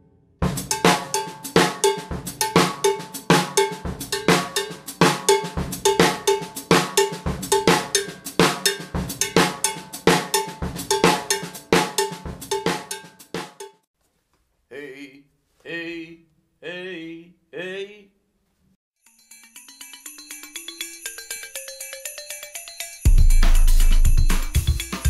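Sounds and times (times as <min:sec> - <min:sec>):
drum kit groove: 0:00.4 - 0:13.9, 0:23.0 - 0:25.0
cowbell: 0:00.7 - 0:13.8, 0:19.0 - 0:25.0.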